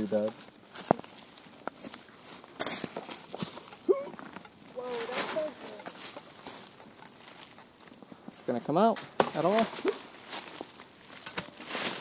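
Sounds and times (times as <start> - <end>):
leaves crunching underfoot: 0.0 - 8.7, 9.3 - 12.0.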